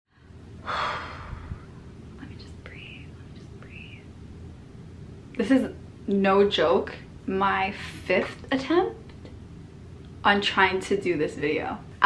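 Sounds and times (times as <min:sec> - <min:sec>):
woman sighing: 0:00.6 - 0:01.8.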